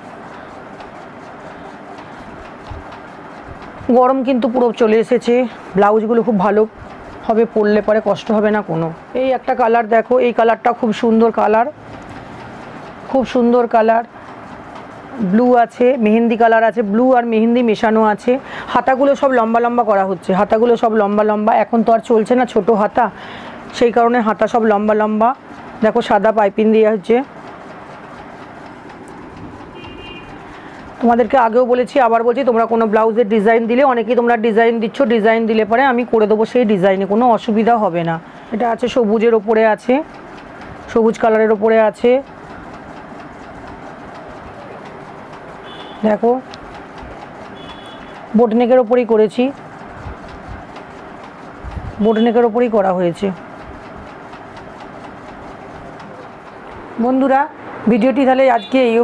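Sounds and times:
steady background noise: 0.0 - 59.0.

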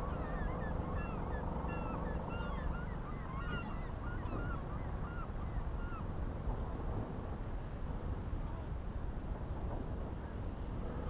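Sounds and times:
flock of birds calling: 0.0 - 6.0
wind rumble on microphone: 0.0 - 11.0.

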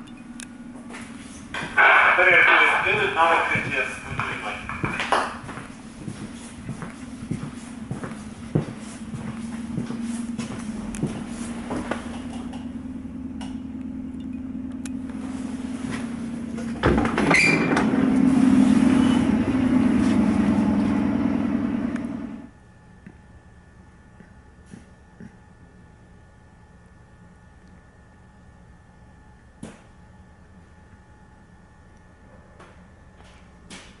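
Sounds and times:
train equipment hum: 0.0 - 34.0.

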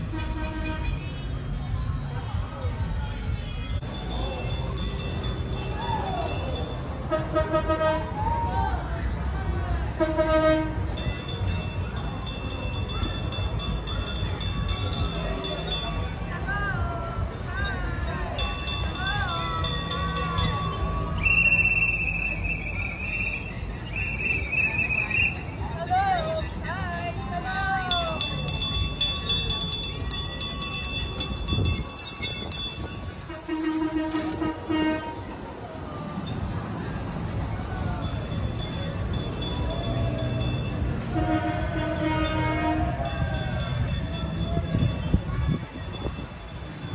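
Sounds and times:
train-style horn toots: 0.0 - 1.0, 7.1 - 8.2, 10.0 - 10.9, 33.2 - 35.4, 41.0 - 43.2
low engine rumble: 0.0 - 46.9
road train bell ringing: 3.3 - 7.7, 10.5 - 22.3, 23.1 - 35.0, 36.1 - 37.0, 37.6 - 46.9.

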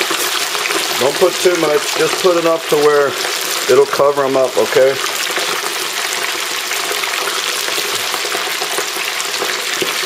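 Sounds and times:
wings deep-frying in oil: 0.0 - 10.0.

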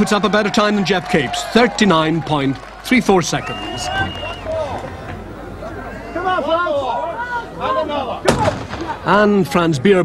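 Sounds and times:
voices shouting: 0.0 - 8.3
gunshot: 8.3 - 9.0.

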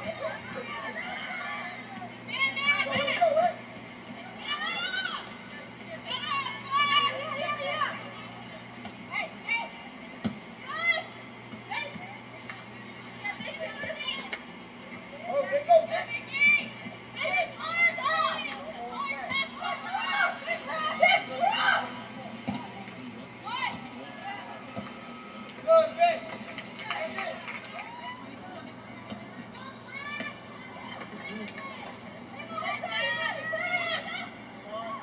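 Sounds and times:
children shouting: 0.0 - 8.5, 10.6 - 12.0, 15.2 - 22.7, 25.2 - 35.0.

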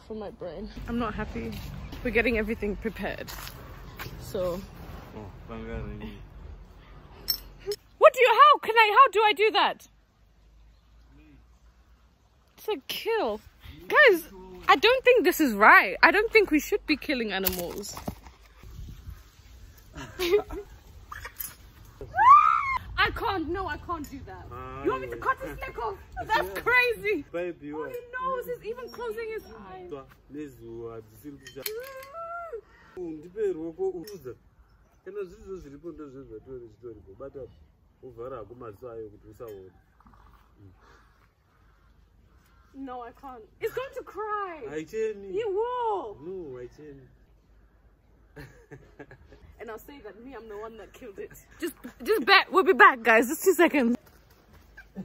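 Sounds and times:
woman whining and squealing: 22.0 - 23.0, 31.8 - 32.7
knife clinking against metal: 31.4 - 32.1.

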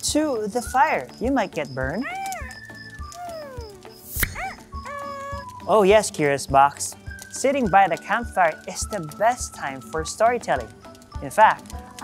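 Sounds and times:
soft background music: 0.0 - 12.0
cartoon meow-like voice: 2.0 - 5.6.

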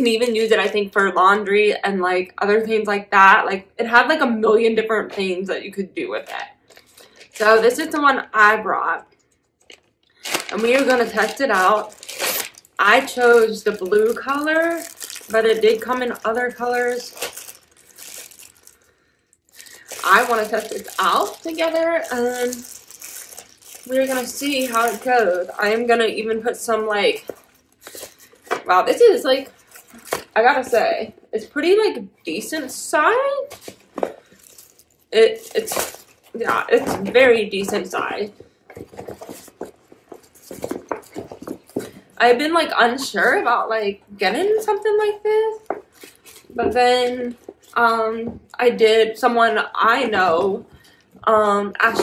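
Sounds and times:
plastic packaging crinkling: 6.6 - 7.9, 9.3 - 30.8, 33.4 - 42.0, 45.5 - 47.8.

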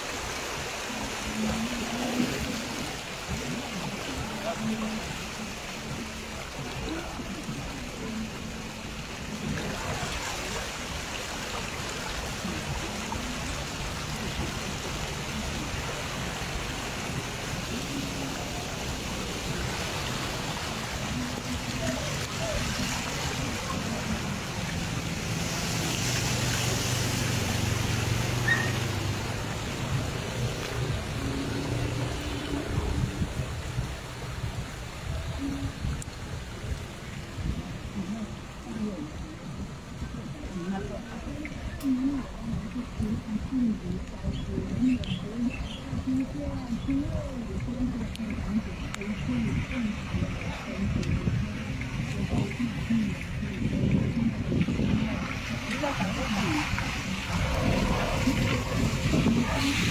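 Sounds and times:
low engine hum: 0.0 - 59.9
water swishing around car wheels: 0.0 - 59.9.

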